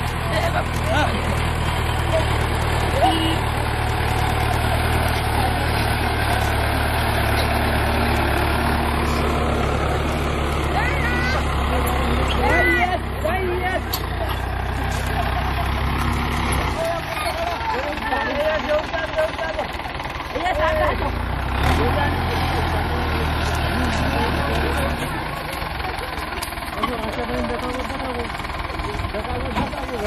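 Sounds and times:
tractor diesel engine idling: 0.0 - 30.0.

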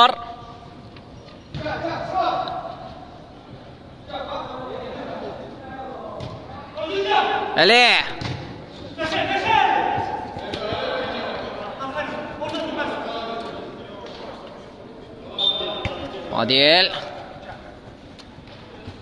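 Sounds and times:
players shouting in a hall: 4.0 - 8.2, 8.8 - 13.8.

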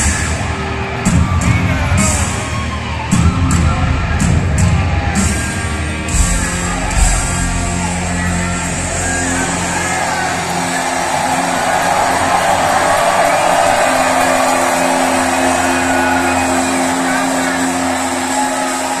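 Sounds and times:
heavy metal band sustained notes: 0.0 - 19.0
stadium crowd cheering and shouting: 0.0 - 19.0.

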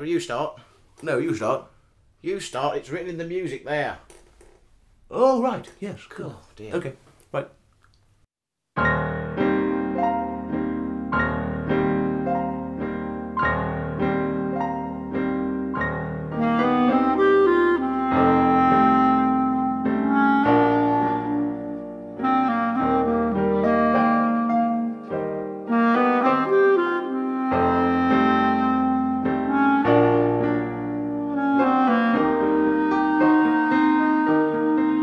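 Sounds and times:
clarinet melody: 8.8 - 35.0
grand piano accompaniment: 8.8 - 35.0.

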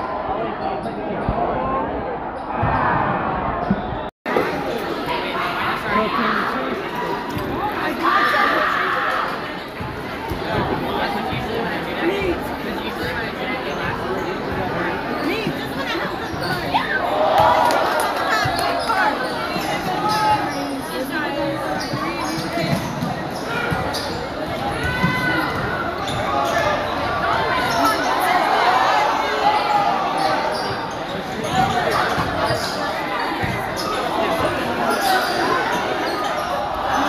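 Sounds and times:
crowd chatter: 0.0 - 37.0.

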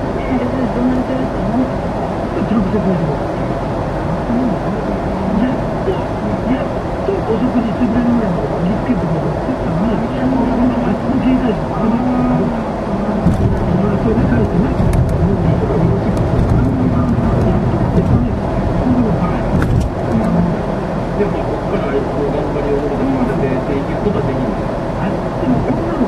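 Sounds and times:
car driving rumble: 0.0 - 26.0
voices talking: 0.0 - 26.0.

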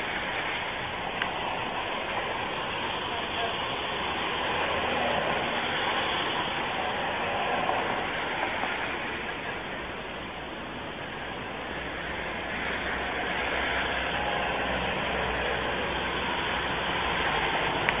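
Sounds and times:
passing vehicle rumble: 0.0 - 18.0.

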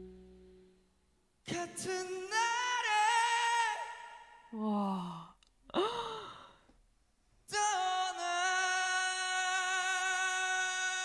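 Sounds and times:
breathy vocal sighs: 4.6 - 6.6.

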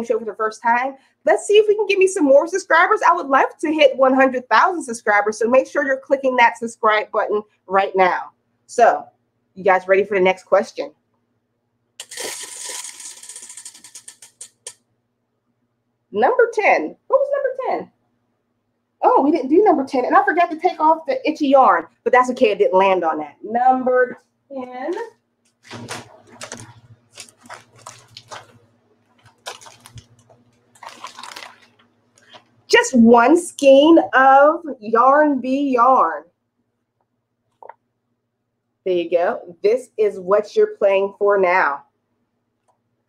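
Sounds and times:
faint steady hum: 0.0 - 43.0
fabric bag rustling: 25.6 - 32.5.

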